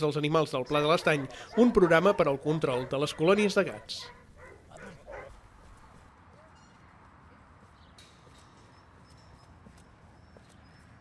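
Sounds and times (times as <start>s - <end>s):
dog barking faintly: 1.0s - 6.6s.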